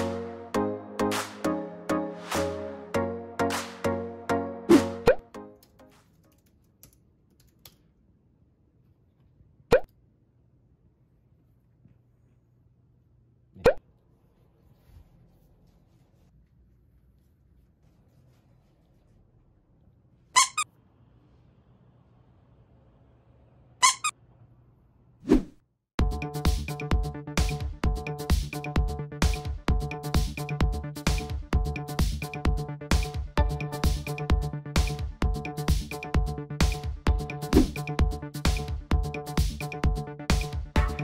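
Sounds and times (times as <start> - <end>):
squeaky sound effects: 20.4 - 20.7, 23.8 - 24.2.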